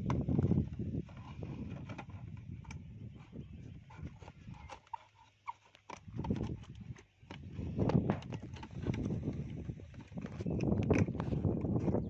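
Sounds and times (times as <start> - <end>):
scissors cutting plastic bottle: 3.9 - 11.8.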